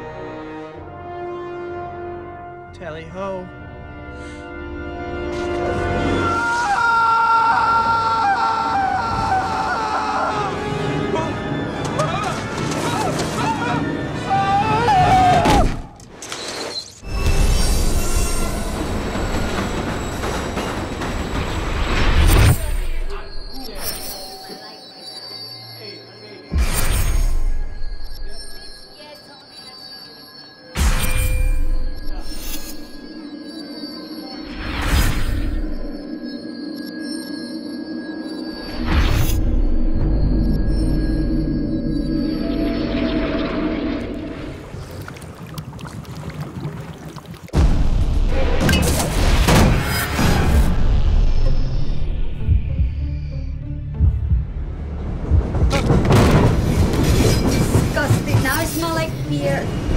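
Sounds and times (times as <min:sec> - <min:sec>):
eerie tense film score: 0:00.0 - 0:59.9.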